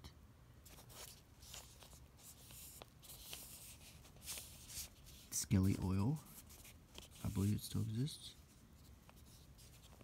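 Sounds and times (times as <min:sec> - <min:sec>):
newspaper rustling: 0:00.6 - 0:10.0.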